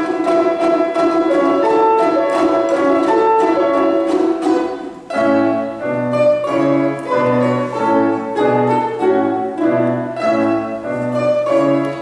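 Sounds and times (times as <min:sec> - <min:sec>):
balalaika ensemble playing: 0:00.0 - 0:12.0
grand piano accompaniment: 0:00.0 - 0:12.0.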